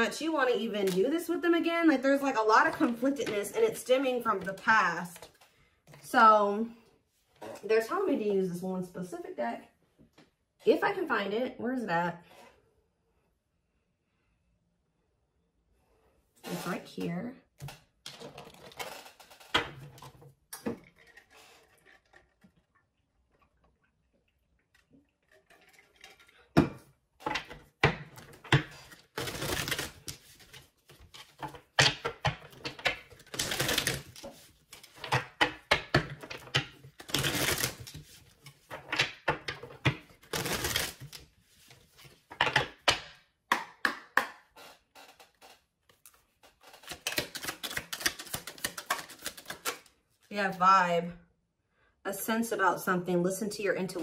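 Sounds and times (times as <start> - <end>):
cards clicking and tapping on table: 42.3 - 44.6
cards slapping: 42.6 - 49.9
cards shuffling clicks: 44.5 - 49.9.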